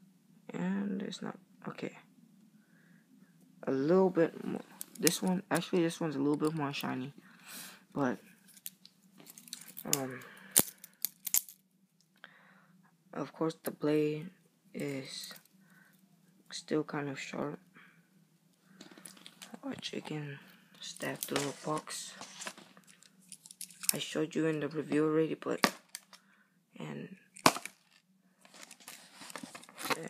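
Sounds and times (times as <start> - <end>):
soft handling clicks and scrapes: 27.8 - 30.0.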